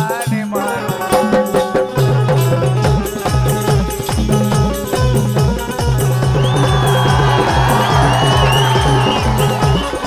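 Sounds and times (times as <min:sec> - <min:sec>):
folk music with harmonium: 0:00.0 - 0:10.0
steady drum beat: 0:00.0 - 0:10.0
crowd cheering: 0:06.0 - 0:10.0.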